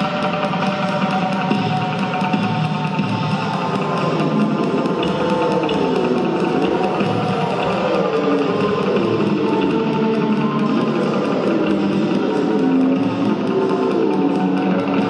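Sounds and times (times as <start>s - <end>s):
experimental electric guitar music: 0.0s - 15.0s.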